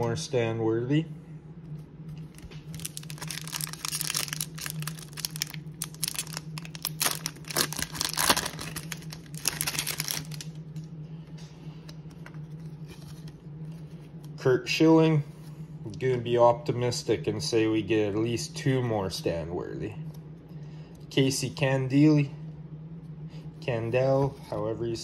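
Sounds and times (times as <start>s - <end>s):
steady low hum: 0.0s - 25.0s
foil wrapper tearing and crinkling: 2.4s - 10.6s.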